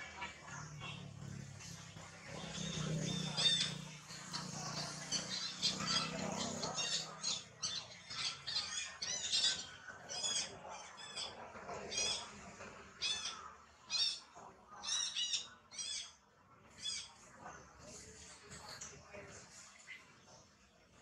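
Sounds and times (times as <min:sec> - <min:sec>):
high-pitched animal chirping: 0:02.3 - 0:11.3.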